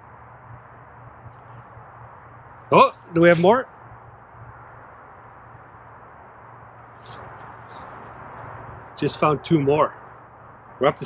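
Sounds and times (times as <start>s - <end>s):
faint high insect drone: 0.0s - 11.0s.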